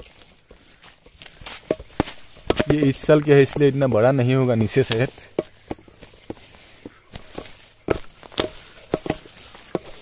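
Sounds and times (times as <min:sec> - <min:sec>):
high insect trill: 0:00.0 - 0:10.0
machete chopping into soil: 0:01.5 - 0:02.9, 0:07.1 - 0:10.0.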